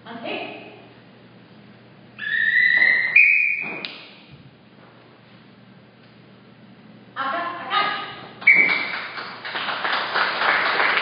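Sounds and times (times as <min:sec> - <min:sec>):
two-tone whistle blast: 0:02.2 - 0:03.8, 0:08.5 - 0:08.9.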